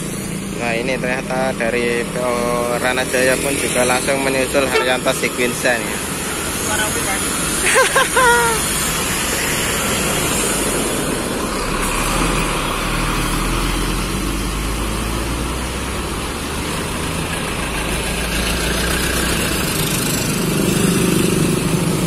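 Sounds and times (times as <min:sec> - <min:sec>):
bus diesel engine driving off: 0:00.0 - 0:22.0
motorcycles passing: 0:00.0 - 0:22.0
road traffic: 0:00.0 - 0:22.0.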